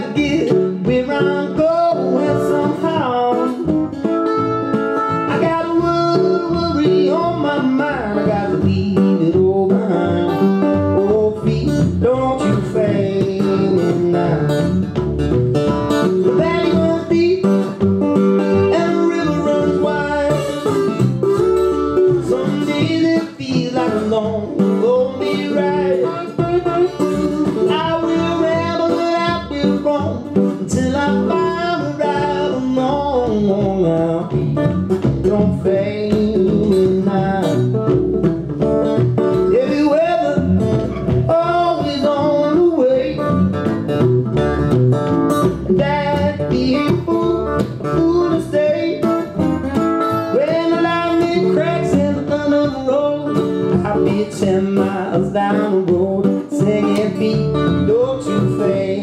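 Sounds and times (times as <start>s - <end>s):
plucked double bass: 0.0s - 59.0s
slide guitar: 0.0s - 59.0s.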